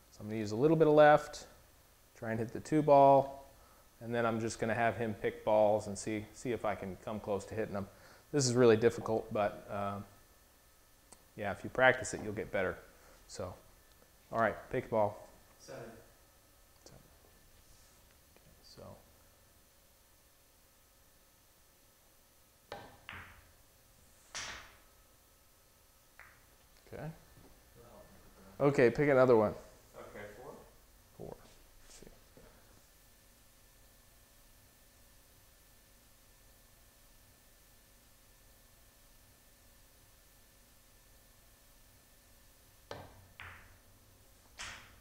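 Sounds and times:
cue tip striking ball: 22.7 - 23.5, 24.3 - 24.8, 26.2 - 26.5, 42.9 - 43.8, 44.6 - 45.0
pool balls clacking: 22.7 - 23.6, 24.3 - 24.8, 26.2 - 26.7, 42.9 - 43.8.

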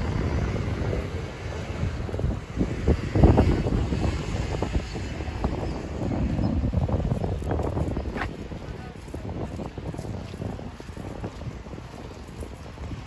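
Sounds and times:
wind buffeting microphone: 0.0 - 13.0.

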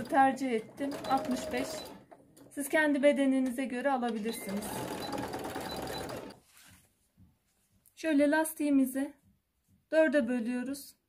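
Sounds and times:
sewing machine stitching: 0.0 - 6.4.

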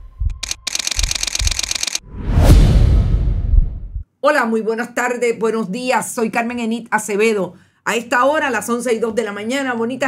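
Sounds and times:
loud deep hit: 2.2 - 4.0.

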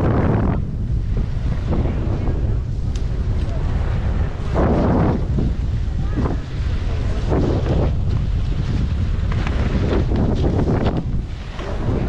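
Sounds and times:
wind buffeting microphone: 0.0 - 12.0
ski edges scraping packed snow: 3.1 - 12.0.

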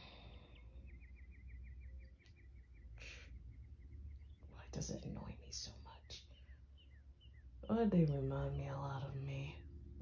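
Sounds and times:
woman whispering: 4.5 - 6.3.

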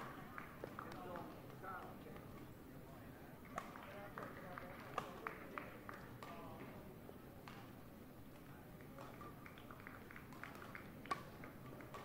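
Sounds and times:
sports hall ambience: 0.0 - 12.0.

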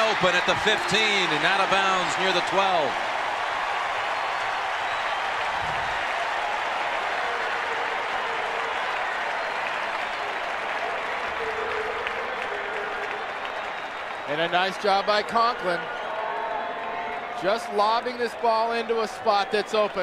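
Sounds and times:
stadium crowd cheering and applauding: 0.0 - 20.0.

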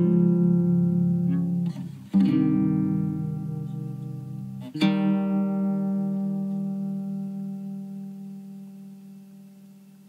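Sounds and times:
instrumental chord ringing: 0.0 - 10.0.

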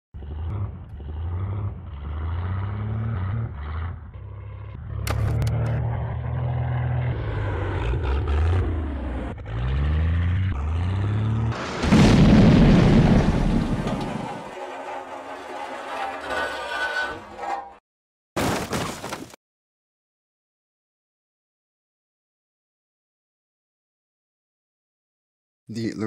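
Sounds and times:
plane engine drone sputtering: 0.2 - 17.8
loud explosion: 11.6 - 14.6.

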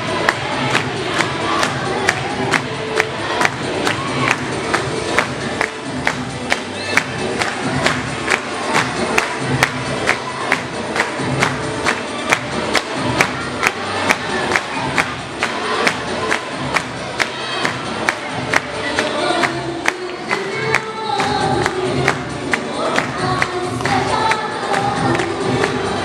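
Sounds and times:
crowd cheering and singing along: 0.0 - 26.0
dance music over loudspeaker: 0.0 - 26.0
steady clapping beat: 0.0 - 26.0.

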